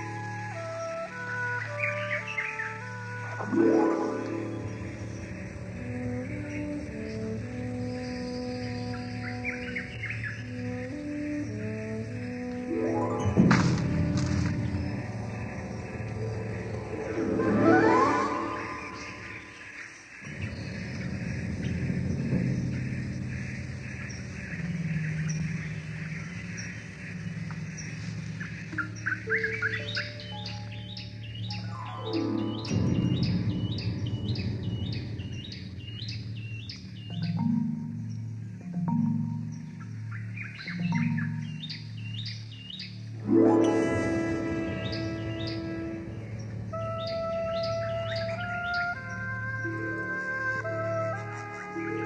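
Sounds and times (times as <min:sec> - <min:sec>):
background music with low notes: 0:00.0 - 0:52.0
bird chirping: 0:00.0 - 0:52.0.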